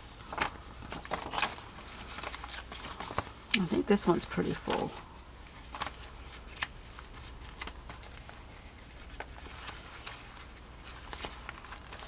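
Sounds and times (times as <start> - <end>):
paper pages rustling: 0.0 - 12.0.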